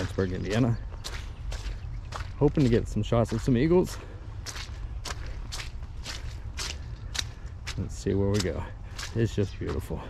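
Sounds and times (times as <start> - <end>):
footsteps on muddy dirt: 0.0 - 10.0.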